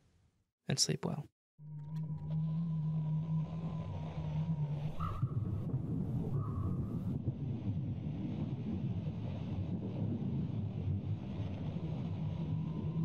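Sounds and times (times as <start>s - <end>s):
low rumbling drone: 1.6s - 13.0s.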